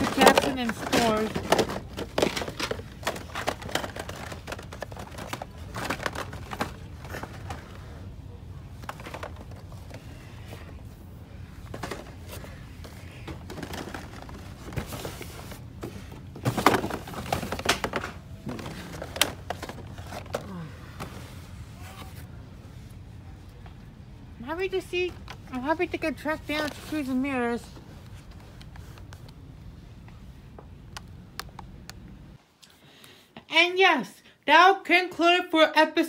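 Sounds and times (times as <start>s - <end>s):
plastic toy packaging handled: 0.0s - 7.9s, 8.7s - 10.2s, 11.6s - 21.2s.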